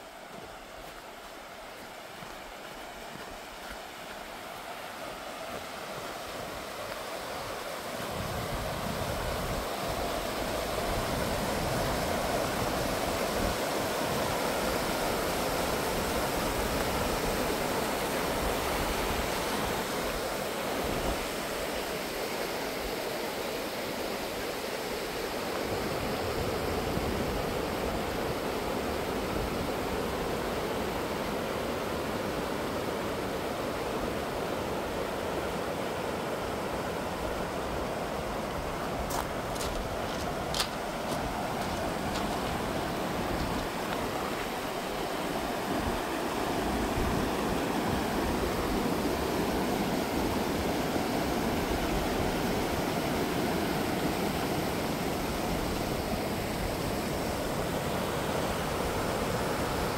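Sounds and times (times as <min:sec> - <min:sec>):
river water rushing over rapids: 0:00.0 - 0:59.9.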